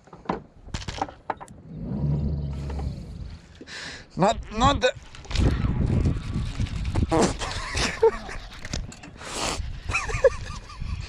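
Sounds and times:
low rumble: 1.5 - 3.8.

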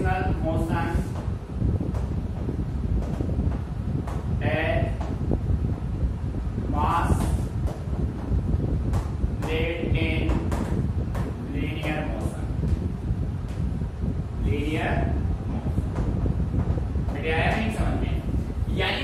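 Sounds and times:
steady low rumble: 0.0 - 19.0
man speaking: 17.2 - 19.0.

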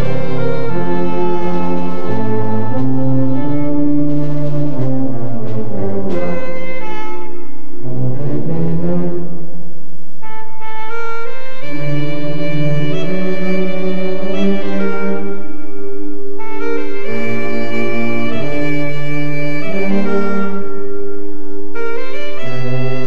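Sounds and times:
slow solemn brass music: 0.0 - 23.0.

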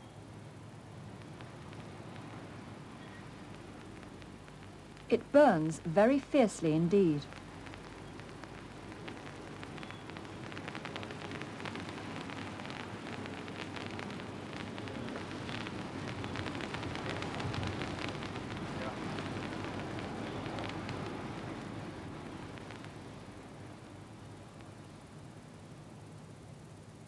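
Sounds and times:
burning metal sparks crackling: 0.0 - 25.6.

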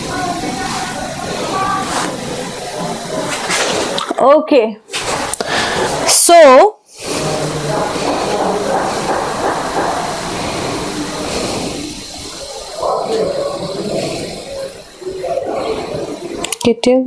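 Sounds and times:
faint indistinct voices: 0.0 - 4.2, 6.9 - 16.8
steady rushing hiss: 0.0 - 16.6.

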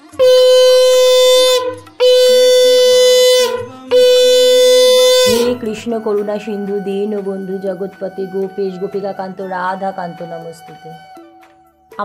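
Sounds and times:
conch shell blasts: 0.0 - 5.7.

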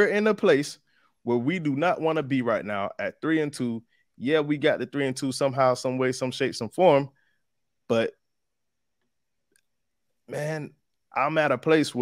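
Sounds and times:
man speaking: 0.0 - 7.1, 7.9 - 8.2, 10.3 - 12.0.

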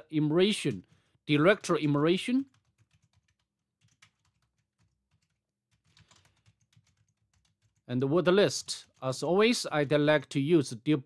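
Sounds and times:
keyboard typing: 2.4 - 7.9.

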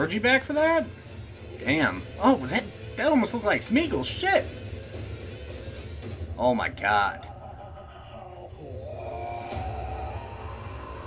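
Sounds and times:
eerie music: 0.9 - 11.0
deep rumble: 7.2 - 11.0.

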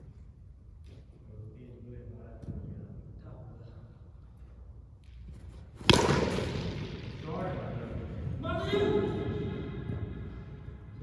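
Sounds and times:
cricket bat striking ball: 5.8 - 7.4.

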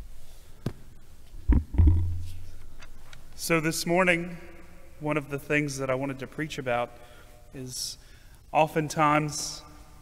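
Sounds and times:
low hum: 1.4 - 3.4.

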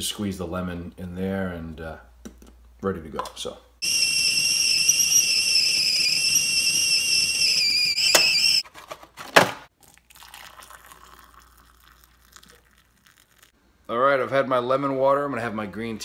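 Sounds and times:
kettle whistling: 3.8 - 8.6
water pouring into a mug: 9.8 - 13.6.

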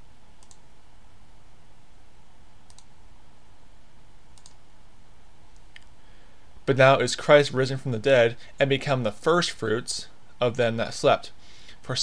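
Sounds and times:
steady low hum: 0.0 - 12.0
computer clicks: 0.4 - 0.6, 2.7 - 3.0, 4.3 - 4.6.

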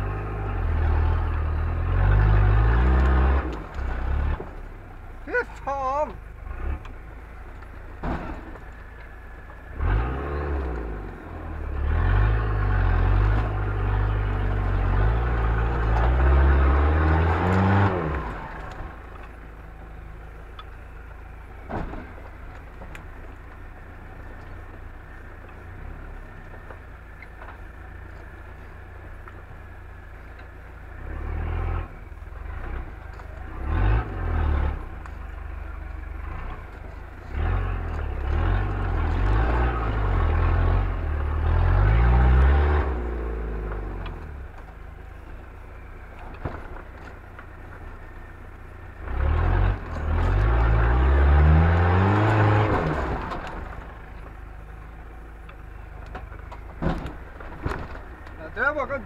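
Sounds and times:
off-road vehicle engine revving: 0.0 - 59.0.

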